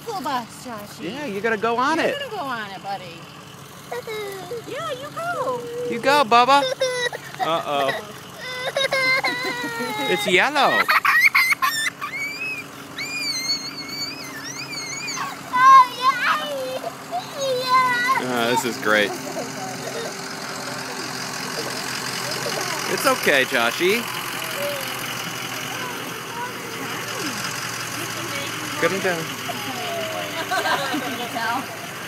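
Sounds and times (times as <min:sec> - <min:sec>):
bus engine idling: 0:00.0 - 0:32.0
toddler crying: 0:03.9 - 0:04.7, 0:06.5 - 0:18.6, 0:29.5 - 0:30.6
faint voices: 0:15.0 - 0:32.0.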